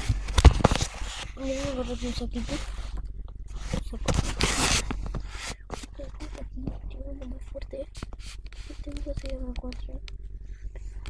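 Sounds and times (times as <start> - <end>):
rustling scrape: 0.0 - 9.3.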